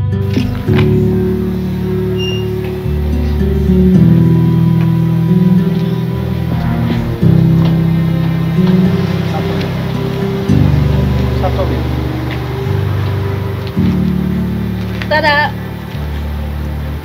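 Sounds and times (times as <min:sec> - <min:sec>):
music with low bass chords: 0:00.0 - 0:17.0.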